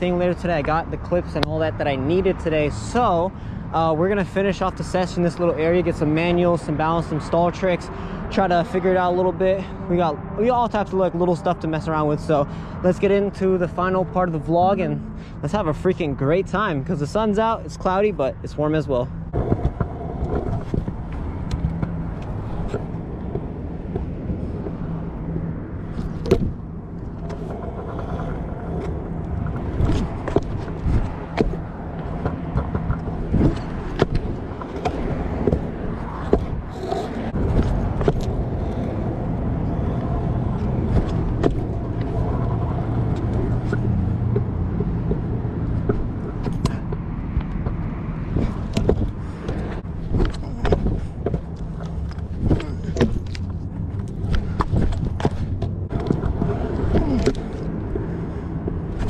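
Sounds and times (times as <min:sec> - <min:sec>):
scooter wheels rolling on asphalt: 0:00.0 - 0:14.8, 0:18.9 - 0:59.0
sharp clicks and knocks: 0:25.9 - 0:38.8, 0:40.5 - 0:57.8.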